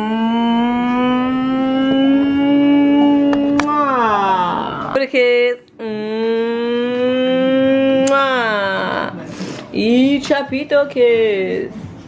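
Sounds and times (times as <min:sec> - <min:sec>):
person holding a long note: 0:00.0 - 0:05.0.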